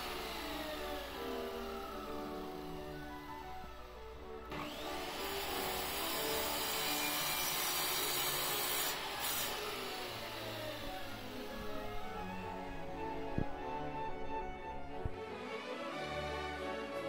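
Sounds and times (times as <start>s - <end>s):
circular saw cutting wood: 0.0s - 12.6s.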